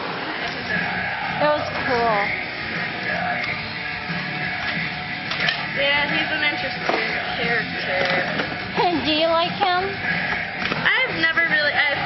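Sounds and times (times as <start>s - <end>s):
background music over speakers: 0.0s - 12.0s
people talking: 5.8s - 10.0s, 10.8s - 12.0s.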